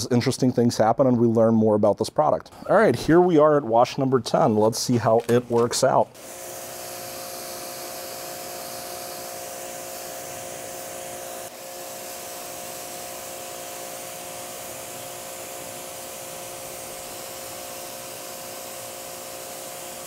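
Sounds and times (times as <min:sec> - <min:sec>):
pressure washer motor whine: 0:06.2 - 0:20.0
water spray hissing: 0:06.2 - 0:20.0.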